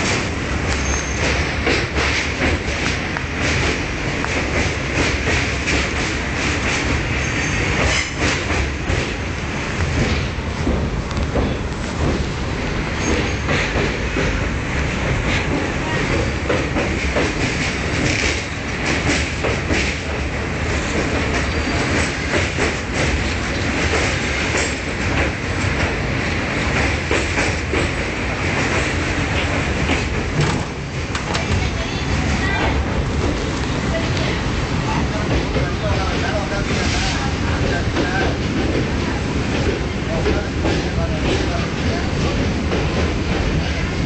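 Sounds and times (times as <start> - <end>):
train wheels rumbling on rails: 0.0 - 44.0.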